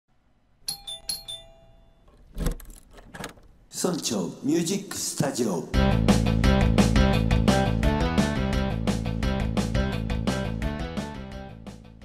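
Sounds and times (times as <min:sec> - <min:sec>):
bell-like chime jingle: 0:00.7 - 0:02.1.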